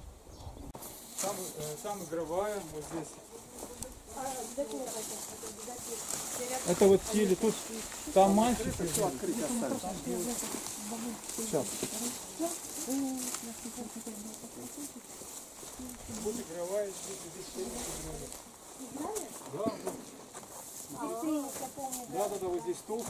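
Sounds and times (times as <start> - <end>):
people talking quietly: 0.4 - 23.0.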